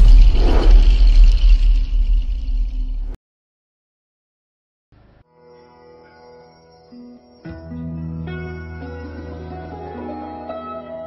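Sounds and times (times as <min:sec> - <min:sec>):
deep rumbling drone: 0:00.0 - 0:03.2.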